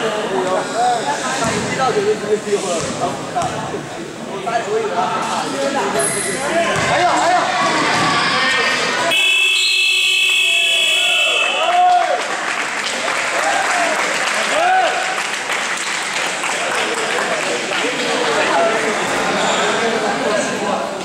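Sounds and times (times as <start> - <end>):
scoreboard buzzer: 9.1 - 11.6.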